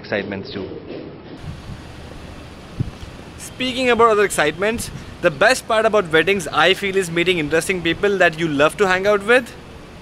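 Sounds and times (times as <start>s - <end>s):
outdoor background noise: 0.0s - 10.0s
short low thump: 2.8s - 3.1s.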